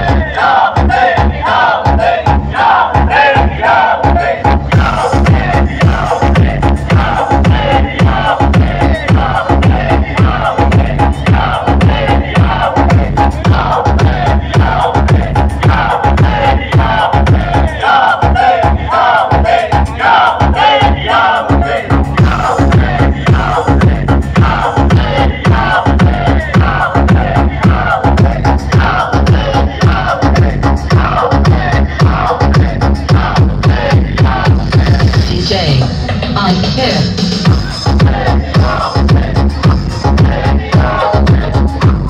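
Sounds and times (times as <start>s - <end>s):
crowd shouting: 0.0s - 32.5s, 33.1s - 34.6s, 37.6s - 39.4s, 40.0s - 41.3s
loud dj music over loudspeakers: 0.0s - 42.0s.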